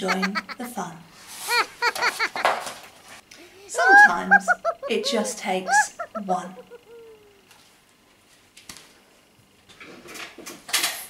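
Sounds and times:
woman laughing playfully: 0.0 - 0.8, 1.4 - 2.7, 3.4 - 7.4.

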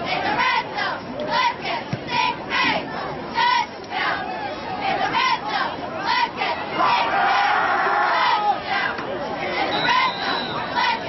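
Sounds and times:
crowd shouting and cheering: 0.2 - 11.0.

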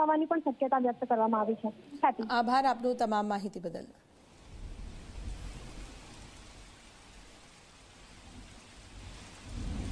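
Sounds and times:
rain on wet pavement: 4.2 - 9.9.

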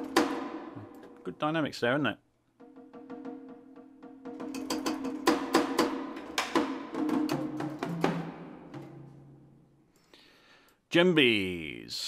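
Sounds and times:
sampled drum and wood hits: 0.0 - 1.2, 2.6 - 9.5.

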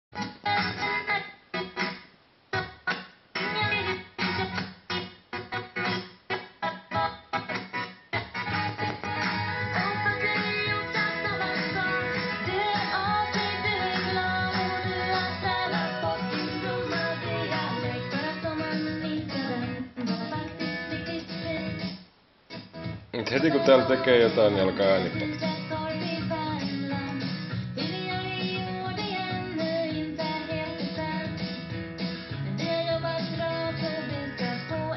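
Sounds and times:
person singing: 0.2 - 1.8, 8.2 - 21.9, 22.7 - 31.6, 32.4 - 34.9
guitar song over speaker: 0.2 - 34.9.

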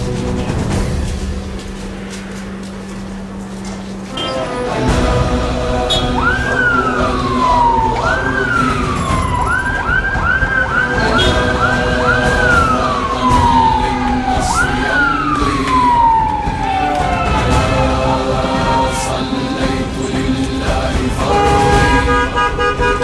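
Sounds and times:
music with sustained tones: 0.0 - 23.0
vehicle siren: 2.4 - 23.0.

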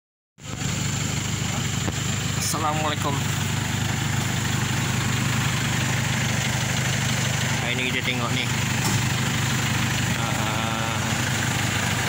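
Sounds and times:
vehicle engine idling: 0.4 - 12.0.

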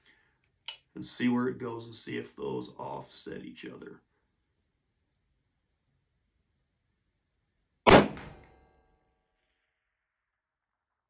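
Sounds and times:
rifle shot: 7.9 - 8.6.

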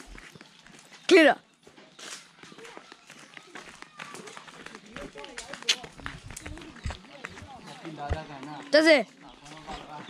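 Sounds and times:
children and adults chattering: 0.0 - 10.0.

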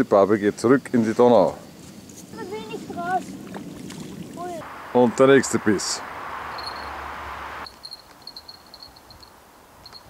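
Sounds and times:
water splashing and sloshing: 2.1 - 5.2.

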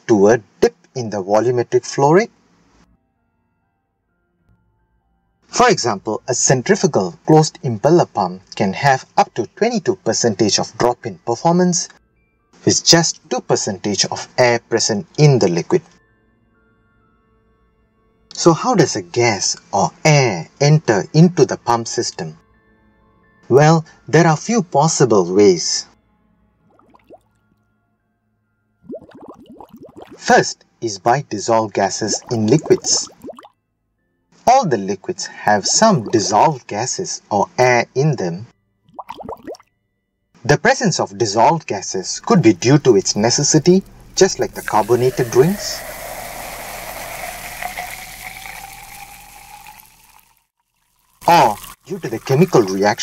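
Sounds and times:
faint background music: 0.0 - 48.6, 51.2 - 53.0
bubbles gurgling in water: 28.9 - 30.2, 32.2 - 33.5, 35.7 - 36.5, 39.0 - 39.6
soft drink pouring into a glass: 28.9 - 30.3, 31.9 - 33.5, 35.5 - 36.5, 42.9 - 53.0
foam fizzing: 43.0 - 53.0.

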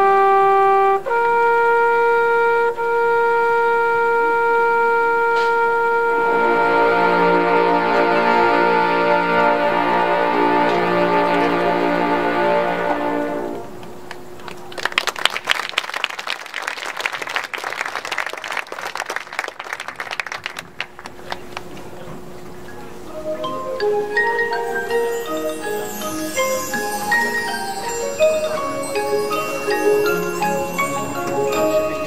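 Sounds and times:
trumpets holding a note: 0.0 - 13.8
marching band brass chord: 0.0 - 14.0
mallet percussion notes: 6.2 - 13.4, 22.7 - 32.0.

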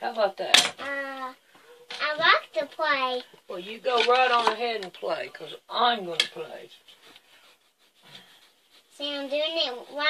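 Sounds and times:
marker rubbing on tabletop: 7.1 - 10.0.

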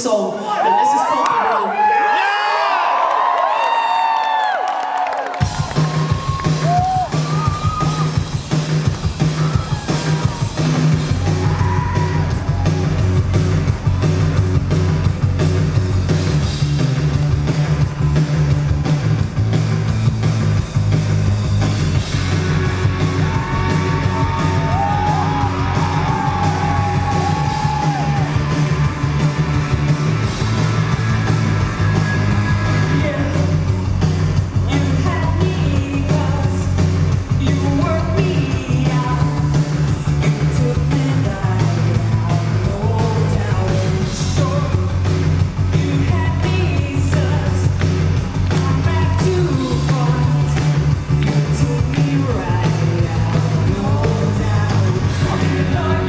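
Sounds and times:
crowd cheering and whooping: 0.4 - 8.3, 9.2 - 14.4, 17.2 - 19.0, 22.2 - 33.0
live rock band playing: 5.3 - 56.0.

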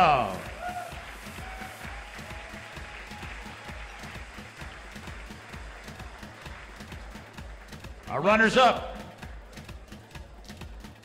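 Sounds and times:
audience applauding: 0.0 - 11.0
background music with steady beat: 0.0 - 11.0.

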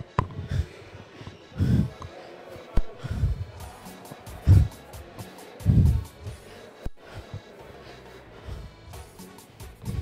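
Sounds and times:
faint music: 0.0 - 10.0.

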